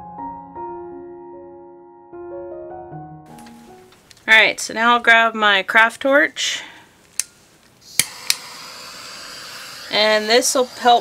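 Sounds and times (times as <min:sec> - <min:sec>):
torch gas hissing: 0:07.8 - 0:11.0
torch igniter clicks: 0:07.9 - 0:08.5.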